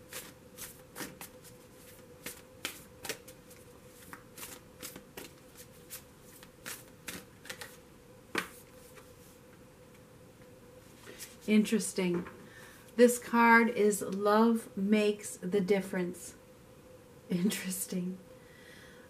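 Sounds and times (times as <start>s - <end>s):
cards being shuffled: 0.1s - 9.1s.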